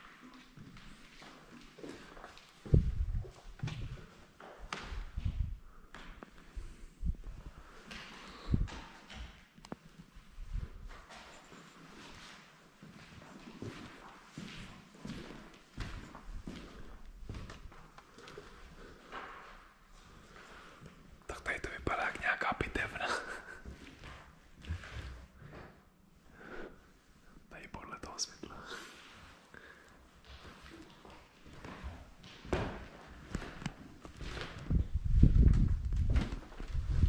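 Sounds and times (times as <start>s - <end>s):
quiet whispering: 20.1s - 25.6s, 26.2s - 31.1s.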